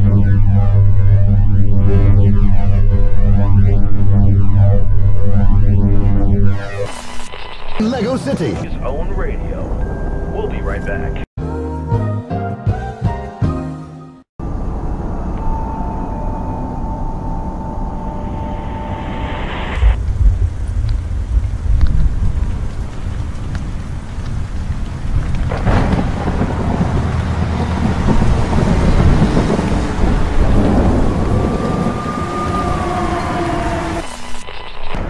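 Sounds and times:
steady high tone: 14.4s - 20.0s
sharp thunderclap: 19.8s - 32.3s
rolling thunder: 19.9s - 34.0s
steady rain: 20.0s - 34.8s.

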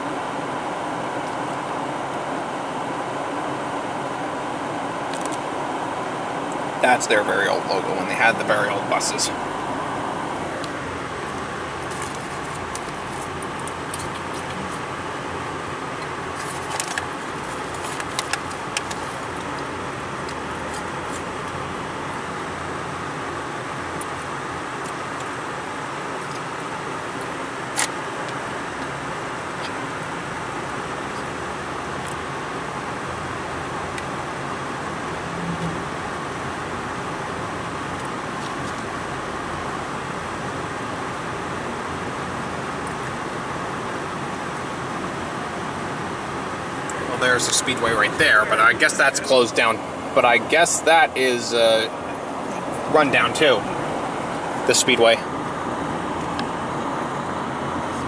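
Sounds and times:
car road and engine noise: 0.0s - 58.0s.

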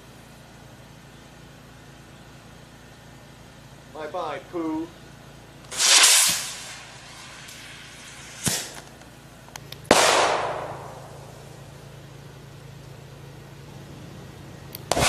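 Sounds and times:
rocket launch whoosh: 5.7s - 8.8s
sharp crack: 5.7s - 11.7s, 14.7s - 15.0s
loud bang: 9.9s - 11.4s.

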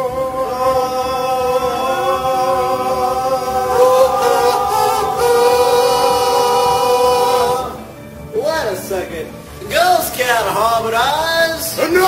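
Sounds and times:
voices singing sustained harmony: 0.0s - 8.4s.

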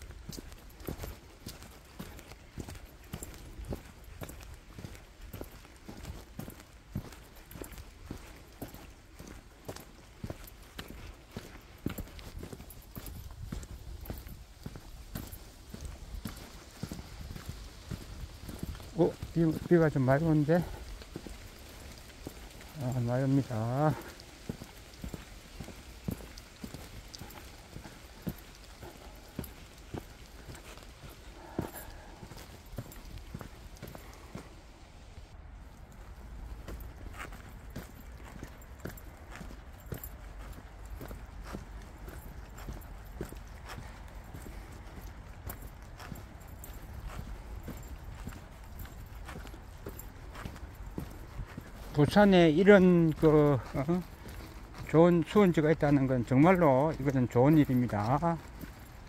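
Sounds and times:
footsteps on dirt trail: 0.0s - 59.0s.

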